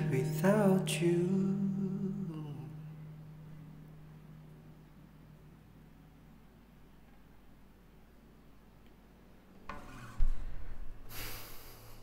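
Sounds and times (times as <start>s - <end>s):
hand rubbing guitar strings: 9.6s - 11.2s.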